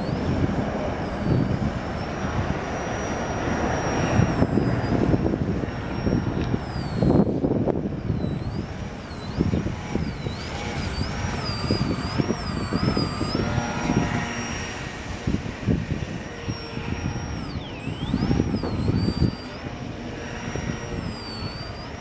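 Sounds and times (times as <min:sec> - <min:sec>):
model plane motor whine: 0:00.0 - 0:22.0
wind buffeting microphone: 0:00.0 - 0:22.0.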